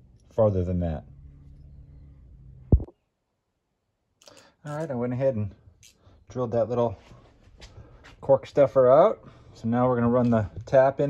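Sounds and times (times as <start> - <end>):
faint low hum: 0.0 - 8.0.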